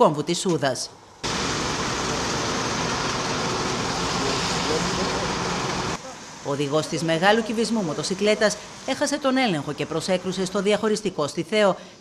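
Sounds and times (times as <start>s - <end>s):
roadside noise hiss: 0.9s - 12.0s.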